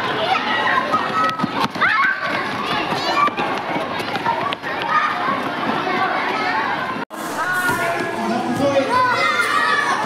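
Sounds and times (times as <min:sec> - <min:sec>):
running footsteps on pavement: 0:00.0 - 0:07.0
children shouting and chattering: 0:00.0 - 0:10.0.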